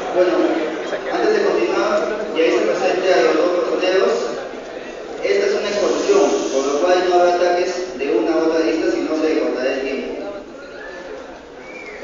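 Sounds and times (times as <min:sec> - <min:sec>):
murmur of audience voices: 0:00.0 - 0:12.0.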